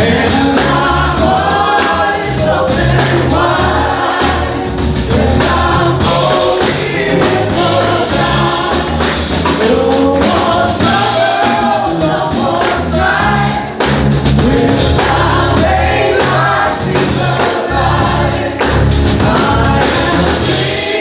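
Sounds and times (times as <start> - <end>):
drums: 0.0 - 21.0
gospel group singing in harmony: 0.0 - 21.0
piano: 0.0 - 21.0.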